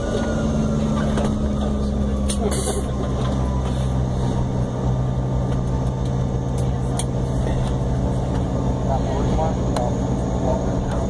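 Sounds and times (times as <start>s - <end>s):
jet engines idling in cabin: 0.0s - 11.0s.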